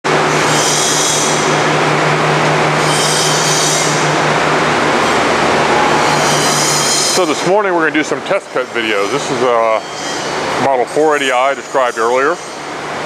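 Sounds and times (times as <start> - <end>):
band saw motor hum: 0.1 - 13.0
high-pitched blade whine: 2.7 - 10.4.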